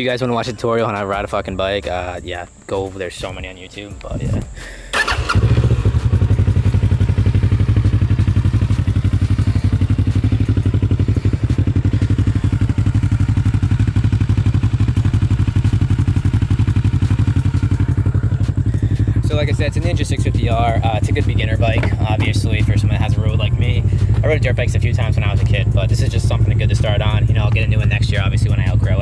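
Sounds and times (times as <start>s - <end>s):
motorcycle engine starting and idling: 2.7s - 29.0s.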